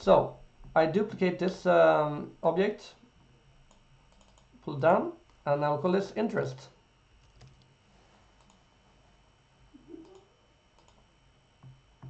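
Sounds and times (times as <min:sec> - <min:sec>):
computer mouse clicks: 0:03.7 - 0:04.5, 0:07.2 - 0:07.7, 0:08.4 - 0:08.6, 0:10.8 - 0:11.0.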